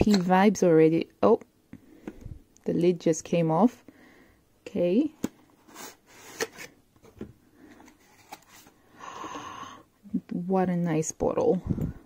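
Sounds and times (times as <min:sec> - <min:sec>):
cardboard rustling scrape: 0:05.6 - 0:06.8, 0:07.7 - 0:08.8.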